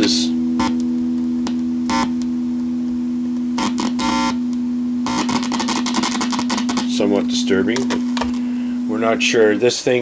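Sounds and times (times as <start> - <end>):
electric guitar amp hum: 0.0 - 10.0
scratchy crackles and pops: 0.6 - 2.7, 3.3 - 8.4.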